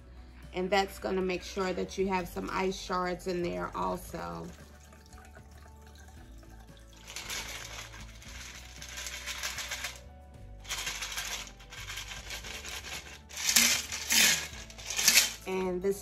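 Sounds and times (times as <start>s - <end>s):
soft background music: 0.0s - 16.0s
ice rattling in shaker: 3.7s - 15.6s
drink pouring into glass: 4.4s - 9.8s.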